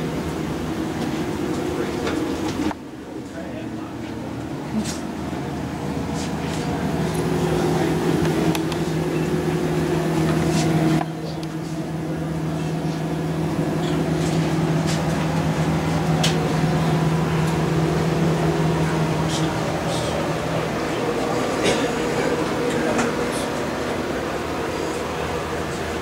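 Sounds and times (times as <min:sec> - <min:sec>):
low mechanical hum: 0:00.0 - 0:26.0.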